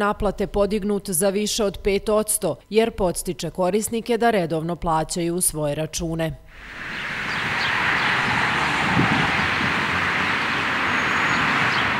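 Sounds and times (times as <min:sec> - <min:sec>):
road traffic hiss: 0:06.5 - 0:11.9.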